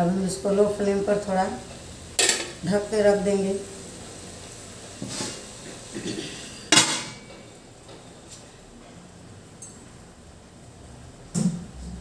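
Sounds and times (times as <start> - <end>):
metal lid clanking on pot: 6.0 - 7.3.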